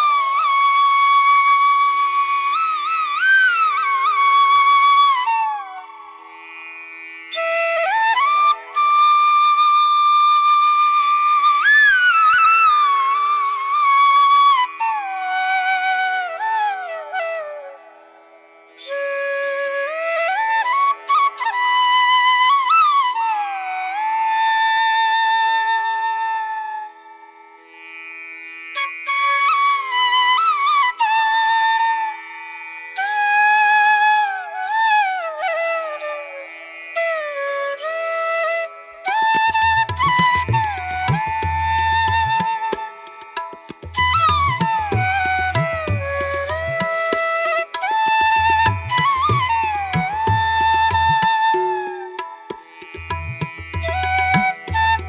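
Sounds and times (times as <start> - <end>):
flute-like melody: 0.0 - 6.2, 7.3 - 27.4, 28.8 - 32.4, 33.0 - 55.0.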